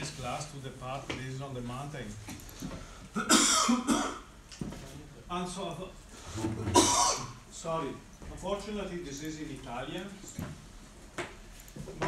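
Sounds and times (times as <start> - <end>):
man coughing: 3.2 - 4.3, 6.6 - 7.4.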